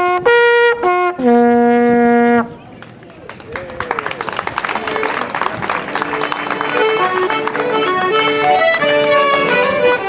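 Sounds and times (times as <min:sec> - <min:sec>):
quiet voices: 0:02.4 - 0:08.5.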